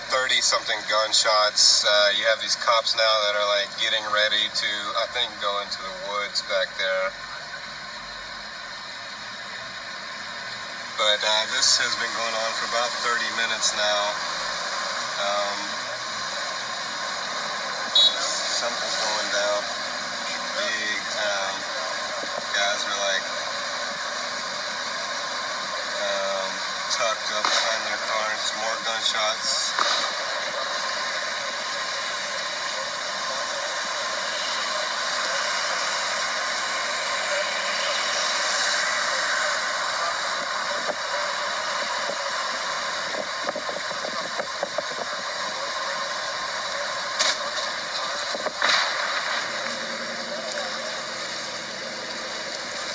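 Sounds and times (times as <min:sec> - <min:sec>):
car engine idling hiss: 0:00.0 - 0:52.9
short sharp crack: 0:27.4 - 0:27.8, 0:29.8 - 0:30.2, 0:48.4 - 0:49.5.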